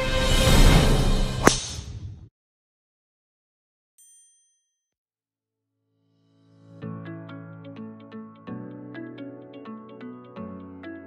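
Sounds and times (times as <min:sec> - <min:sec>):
golf club striking ball: 0:01.4 - 0:01.8.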